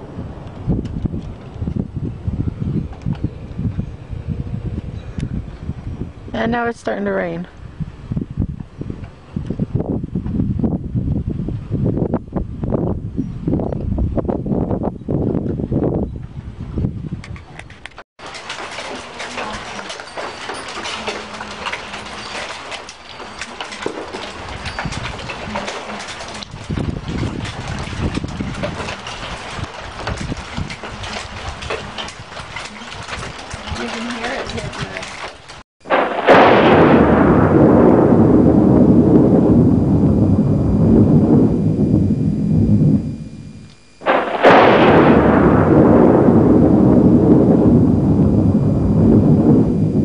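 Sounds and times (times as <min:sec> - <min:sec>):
wind gusting over microphone: 0:00.0 - 0:50.0
rain falling: 0:18.2 - 0:37.6.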